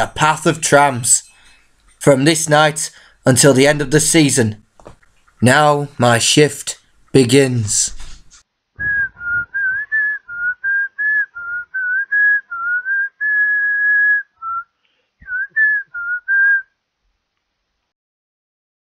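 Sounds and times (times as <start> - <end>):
person whistling a tune: 8.8 - 16.7.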